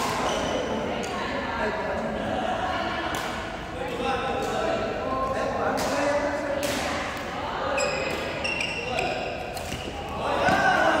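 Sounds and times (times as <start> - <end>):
indistinct voices in hall: 0.0 - 11.0
racket hitting shuttlecock: 6.6 - 7.0.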